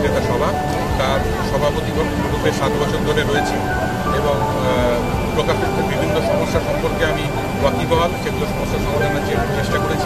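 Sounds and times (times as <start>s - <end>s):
man speaking into microphone: 0.0s - 10.0s
steady background noise: 0.0s - 10.0s.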